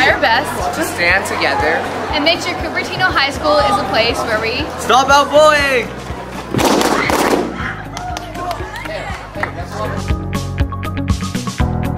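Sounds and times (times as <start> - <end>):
balloons bursting: 6.4 - 7.7.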